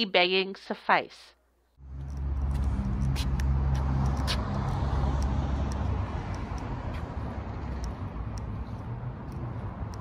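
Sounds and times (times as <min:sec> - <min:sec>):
vehicle engine rumbling: 0:01.8 - 0:10.0.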